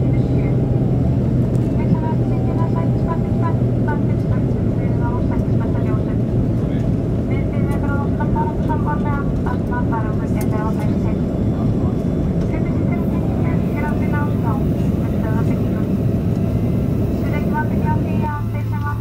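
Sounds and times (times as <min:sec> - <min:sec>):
indistinct voices talking: 0:00.0 - 0:19.0
jet airliner cabin rumble: 0:00.0 - 0:19.0.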